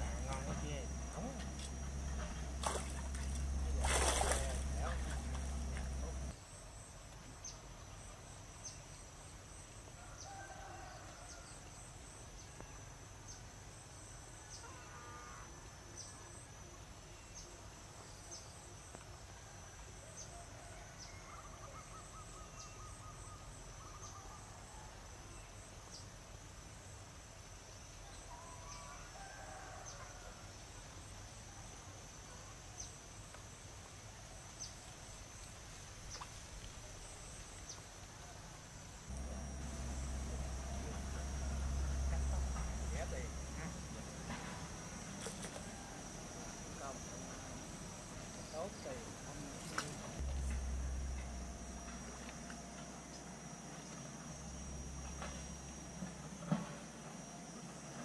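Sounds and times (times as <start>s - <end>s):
high insect drone: 0.0s - 58.0s
low rumble: 39.1s - 44.8s, 50.2s - 53.4s.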